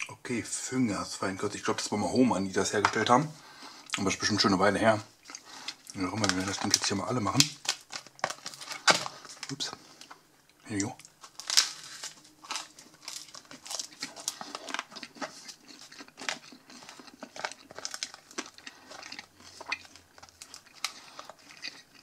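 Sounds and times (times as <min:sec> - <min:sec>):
plastic tub crinkling: 0:05.7 - 0:22.0.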